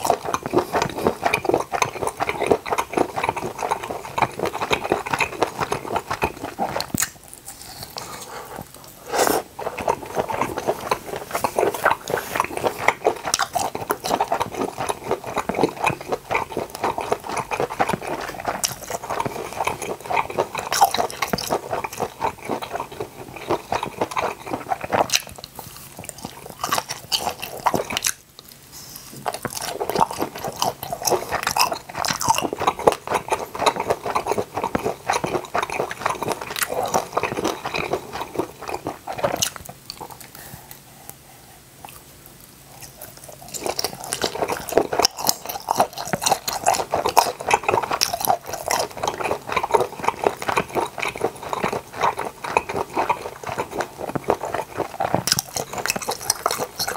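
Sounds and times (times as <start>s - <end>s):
chewing with wet mouth smacks: 0.0s - 41.2s, 41.8s - 56.9s.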